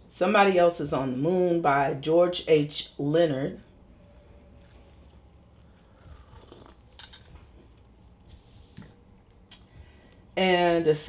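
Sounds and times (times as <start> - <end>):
sipping and swallowing: 5.9 - 6.9.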